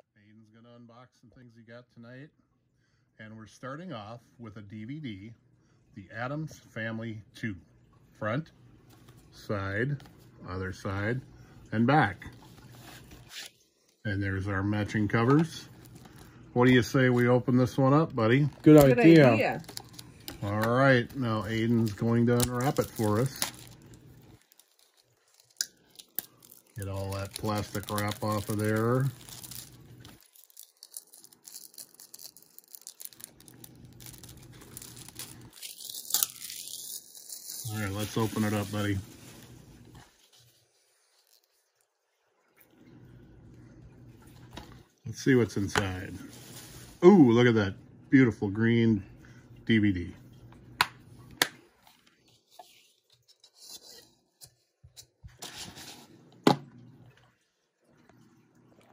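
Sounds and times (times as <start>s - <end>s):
shrink wrap crackle: 15.0s - 41.9s.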